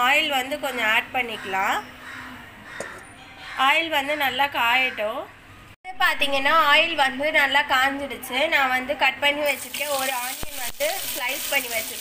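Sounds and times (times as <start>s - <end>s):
woman talking: 0.0s - 1.9s, 3.6s - 5.3s, 5.9s - 12.0s
onion sizzling in hot oil: 9.4s - 12.0s.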